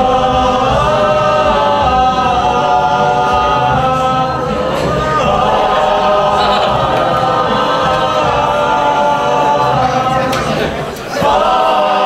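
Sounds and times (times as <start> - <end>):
group singing in harmony: 0.0 - 12.0.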